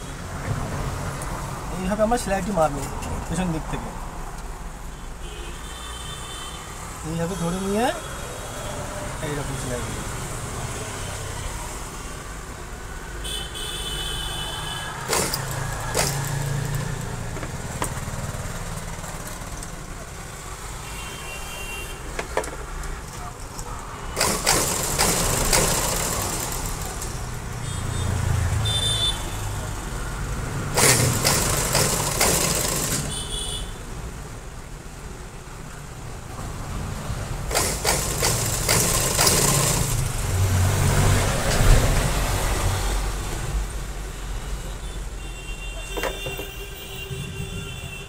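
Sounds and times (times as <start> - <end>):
sewing machine stitching: 15.1 - 17.0, 24.2 - 27.1, 30.8 - 33.2, 37.5 - 40.1.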